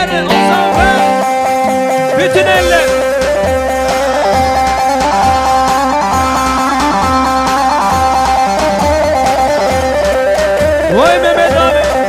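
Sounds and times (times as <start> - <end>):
plucked string melody: 0.0 - 11.9
keyboard: 0.0 - 12.0
steady drum beat: 0.3 - 12.0.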